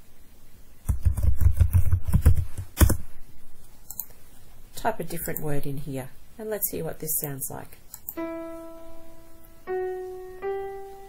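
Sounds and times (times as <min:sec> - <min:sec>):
typing on computer keyboard: 0:00.9 - 0:03.0.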